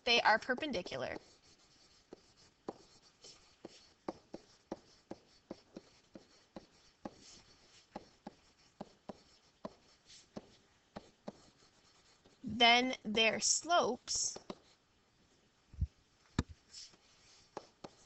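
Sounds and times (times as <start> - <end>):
stylus tapping and scratching: 0.1 - 13.4, 14.1 - 14.8, 16.4 - 18.0.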